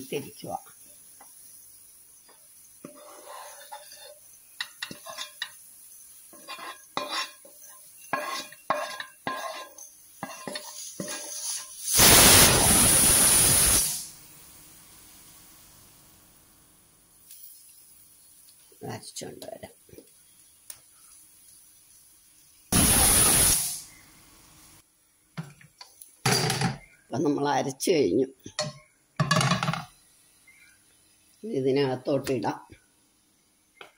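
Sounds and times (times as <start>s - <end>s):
spoon scraping a pan: 2.8s - 11.9s.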